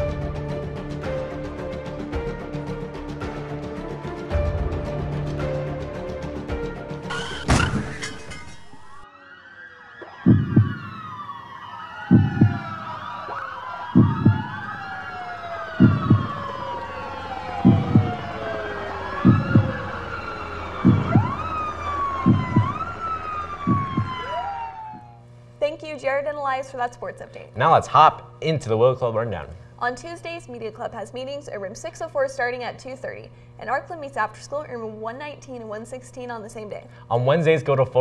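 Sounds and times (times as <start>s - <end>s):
sirens wailing: 7.0s - 25.3s
heartbeat thumping: 10.1s - 11.3s, 12.0s - 13.1s, 13.9s - 15.0s, 15.6s - 16.8s, 17.4s - 24.4s.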